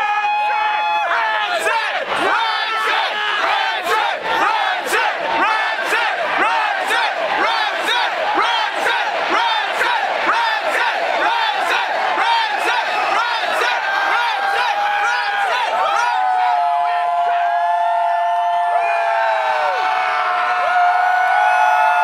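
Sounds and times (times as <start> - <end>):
crowd shouting and chanting: 0.0 - 22.0.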